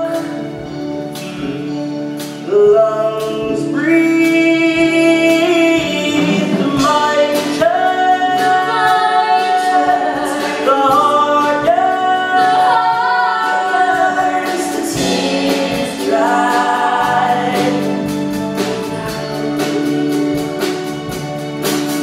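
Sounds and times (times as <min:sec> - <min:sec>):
instrumental accompaniment: 0:00.0 - 0:22.0
woman singing a ballad: 0:02.5 - 0:18.1.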